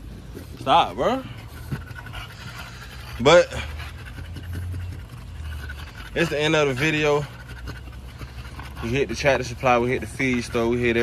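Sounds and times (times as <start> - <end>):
dog claws scratching on wood: 0.0 - 11.0.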